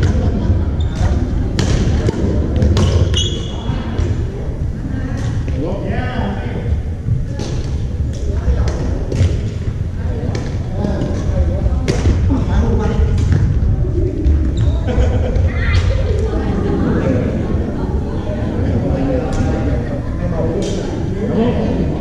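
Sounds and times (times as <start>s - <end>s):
voices in background: 0.0s - 22.0s.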